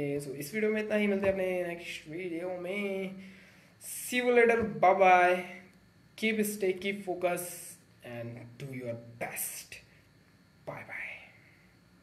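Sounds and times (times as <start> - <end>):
man speaking softly: 10.6 - 11.4.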